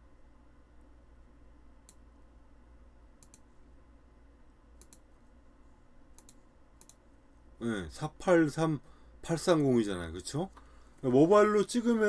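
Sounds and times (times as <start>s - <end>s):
faint low hum: 0.0s - 12.0s
computer mouse clicks: 1.8s - 2.0s, 3.2s - 3.5s, 4.8s - 5.1s, 6.1s - 7.0s.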